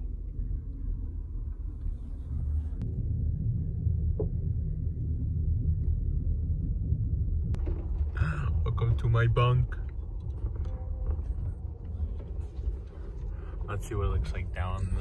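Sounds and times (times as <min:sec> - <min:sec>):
train rumble from inside: 0:00.0 - 0:15.0.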